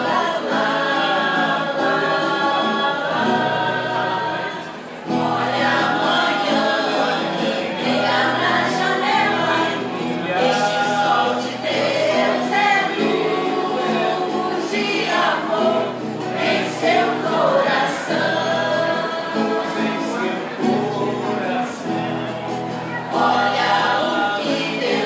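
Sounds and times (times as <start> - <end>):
choir singing: 0.0 - 25.0.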